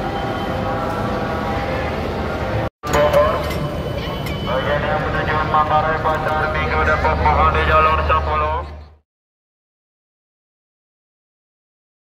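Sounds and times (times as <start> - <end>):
crowd chatter: 0.0 - 9.0.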